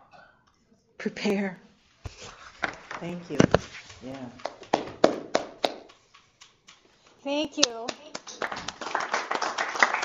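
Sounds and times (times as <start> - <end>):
scattered hand claps: 4.4 - 10.0.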